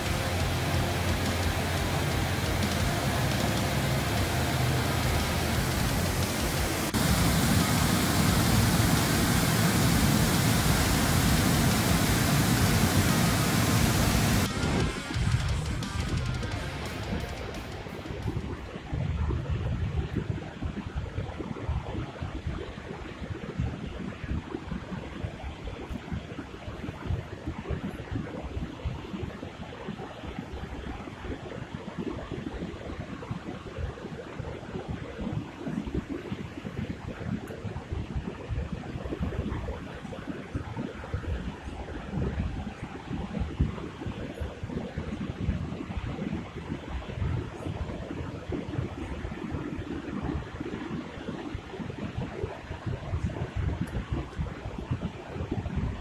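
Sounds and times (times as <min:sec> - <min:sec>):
river rushing over riffles: 0:00.0 - 0:16.0
wind buffeting microphone: 0:00.0 - 0:16.4.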